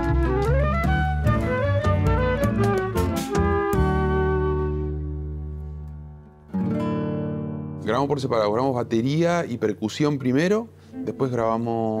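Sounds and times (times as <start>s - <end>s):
classical guitar chord ringing: 6.5s - 8.1s, 10.8s - 11.8s.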